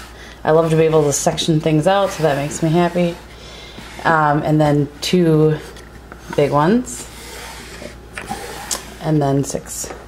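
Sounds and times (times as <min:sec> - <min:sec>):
wood rubbing: 0:00.5 - 0:04.5, 0:05.5 - 0:09.2.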